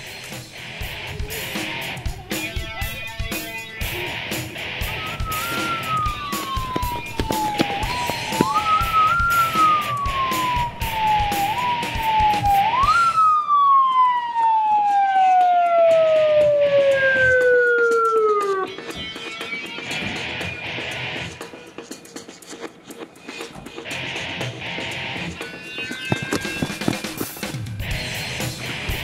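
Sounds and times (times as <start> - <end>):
background music with a beat: 0.0 - 29.0
police siren wailing: 1.2 - 19.0.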